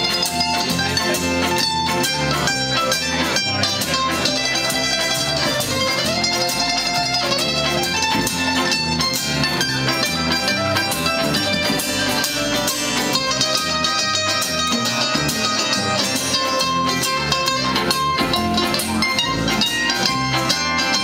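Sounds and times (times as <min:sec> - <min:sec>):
acoustic guitar: 0:00.0 - 0:21.0
mandolin: 0:00.0 - 0:21.0
upright bass: 0:00.0 - 0:21.0.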